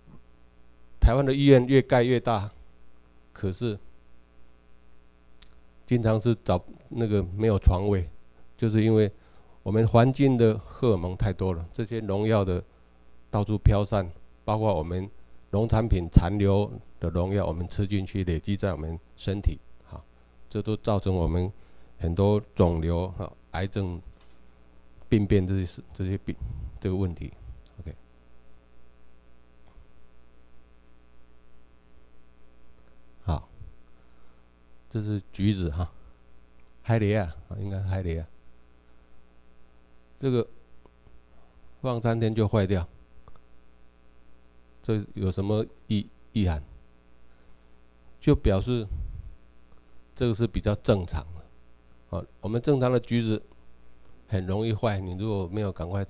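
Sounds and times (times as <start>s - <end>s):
electrical mains hum: 0.0s - 56.0s
man speaking: 1.0s - 2.6s, 3.4s - 3.8s, 5.9s - 12.7s, 13.4s - 24.1s, 25.1s - 28.0s, 33.2s - 33.6s, 34.9s - 36.0s, 36.9s - 38.3s, 40.2s - 40.6s, 41.8s - 42.9s, 44.8s - 46.8s, 48.2s - 49.0s, 50.2s - 51.5s, 52.1s - 53.5s, 54.3s - 56.0s.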